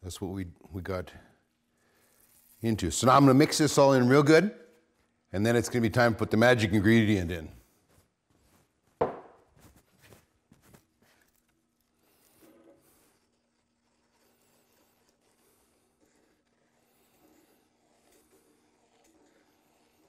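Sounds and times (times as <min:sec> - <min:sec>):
sticks scraping and stirring: 0:01.6 - 0:05.2, 0:09.5 - 0:20.0.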